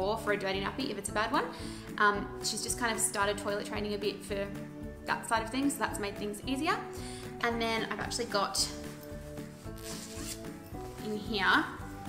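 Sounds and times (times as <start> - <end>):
soft background music: 0.0 - 12.0
fabric rustling: 8.6 - 12.0.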